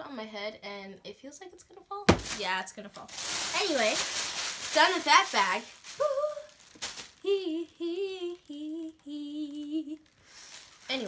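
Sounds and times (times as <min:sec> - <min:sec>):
girl humming a tune: 0:06.0 - 0:06.6, 0:07.2 - 0:10.1.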